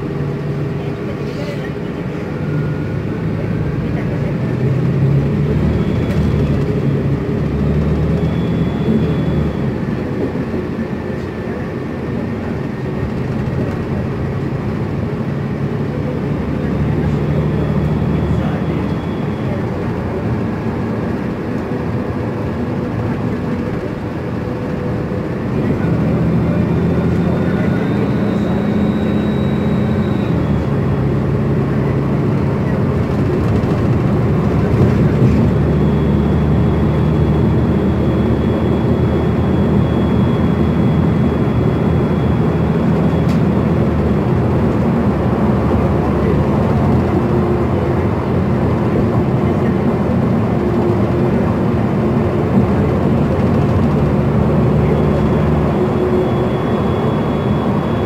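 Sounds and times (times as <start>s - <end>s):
bus engine drone: 0.0s - 58.0s
road and tyre noise: 0.0s - 58.0s.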